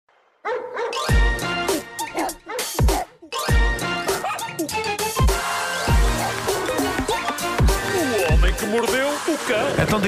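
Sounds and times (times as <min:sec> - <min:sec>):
bark-like sounds: 0:00.4 - 0:01.2, 0:02.1 - 0:03.1, 0:04.1 - 0:04.7, 0:05.9 - 0:07.0
electronic theme music: 0:01.0 - 0:10.0.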